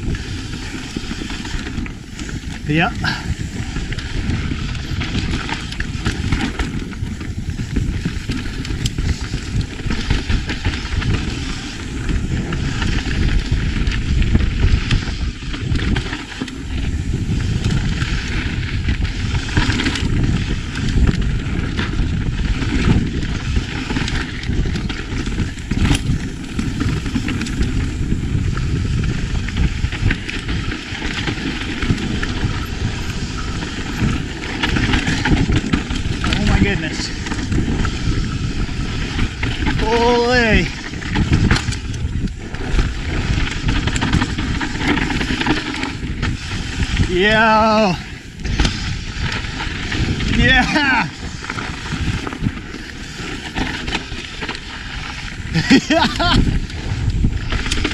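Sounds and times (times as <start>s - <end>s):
bike knocking and rattling: 0.0s - 57.9s
bike tyres rushing over dirt: 0.0s - 57.9s
wind: 0.0s - 57.9s
rider whooping: 50.3s - 51.2s, 55.5s - 56.6s.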